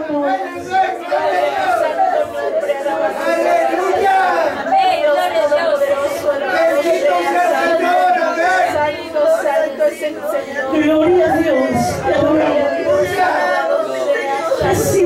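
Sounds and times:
other voices: 0:00.0 - 0:15.0
woman praying into a microphone: 0:04.5 - 0:13.8, 0:14.4 - 0:15.0.

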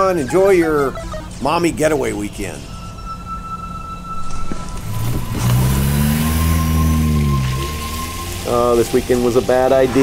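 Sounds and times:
road noise: 0:00.0 - 0:10.0
car engine accelerating: 0:04.1 - 0:10.0.

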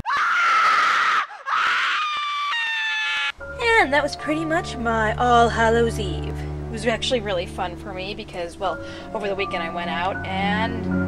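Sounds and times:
woman screaming: 0:00.0 - 0:03.4.

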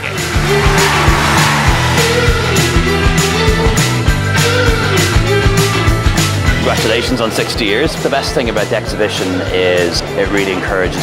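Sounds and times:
upbeat music with drum beat: 0:00.0 - 0:11.0.

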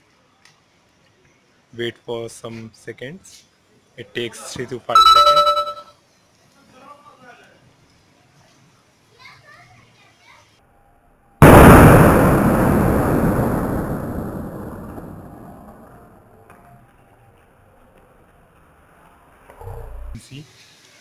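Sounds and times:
rushing noise: 0:11.4 - 0:16.2
loud explosion blast: 0:11.4 - 0:16.3.

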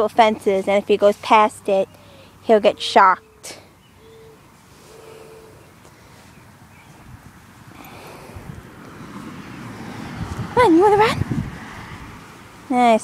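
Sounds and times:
faint steady tone: 0:01.6 - 0:06.6
wind on microphone: 0:06.8 - 0:12.3.

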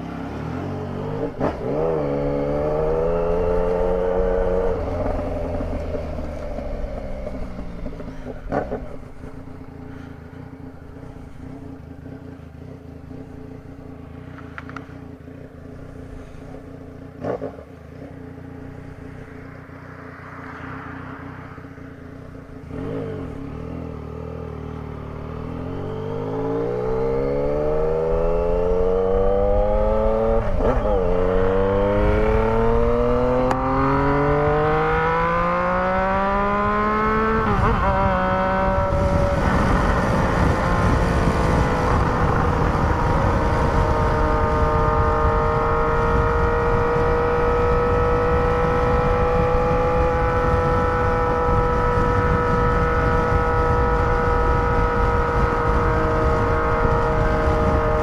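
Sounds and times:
motorcycle engine accelerating: 0:00.0 - 0:58.0
wind rush: 0:26.1 - 0:58.0.

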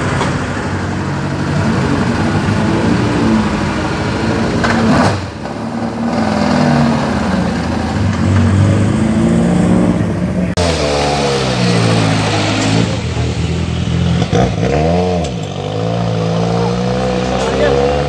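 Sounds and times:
rally car engine revving: 0:00.0 - 0:18.0.

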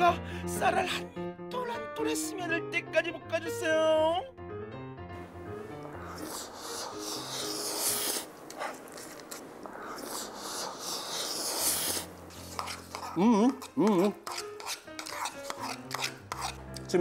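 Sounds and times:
light background music: 0:00.0 - 0:17.0
close eating noises: 0:05.9 - 0:16.9.

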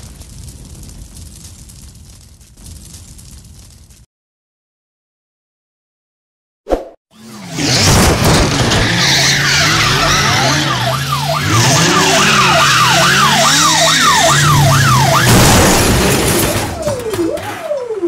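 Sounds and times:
crash: 0:00.0 - 0:04.1, 0:07.2 - 0:18.0
car engine revving: 0:07.2 - 0:16.4
police siren: 0:08.4 - 0:18.0
tyre squeal: 0:08.5 - 0:13.3.

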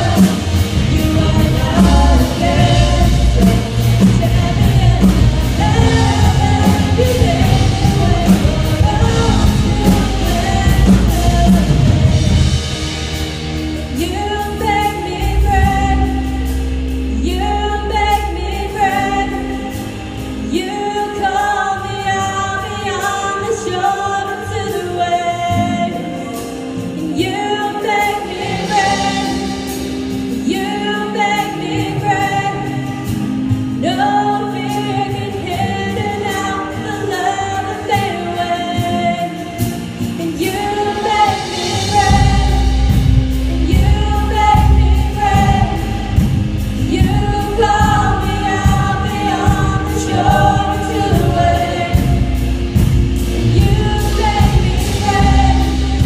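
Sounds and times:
women singing: 0:00.0 - 0:12.7, 0:13.9 - 0:56.0
bass and drums: 0:00.0 - 0:56.0
keyboard: 0:00.0 - 0:56.0.

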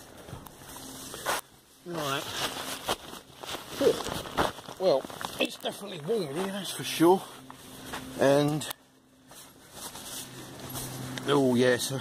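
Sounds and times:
tent fabric and clothing rustling: 0:00.0 - 0:12.0.

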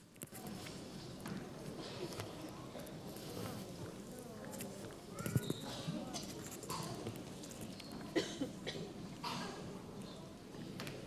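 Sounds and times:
faint children's voices: 0:00.0 - 0:11.0.

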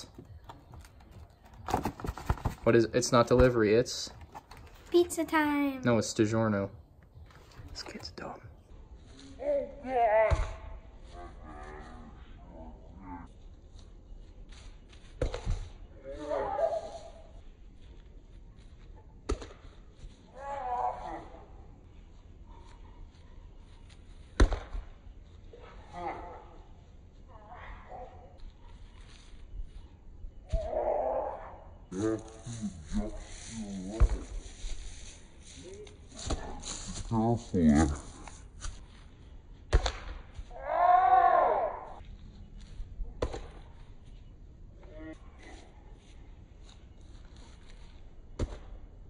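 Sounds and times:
ball slapping into hands: 0:19.2 - 0:19.6, 0:24.4 - 0:24.9, 0:39.7 - 0:40.2.

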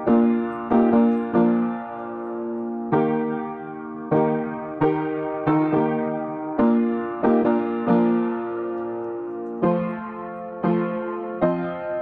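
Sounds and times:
slow piano music: 0:00.0 - 0:12.0.

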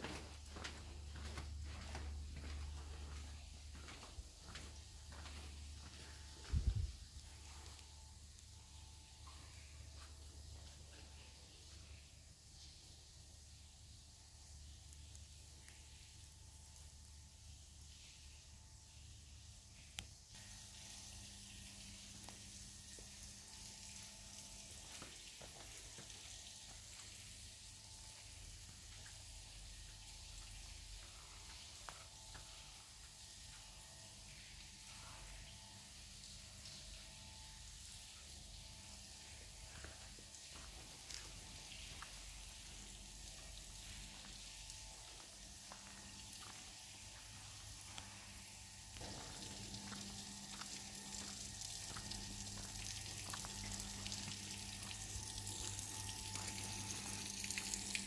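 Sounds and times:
low hum: 0:27.2 - 0:58.0.

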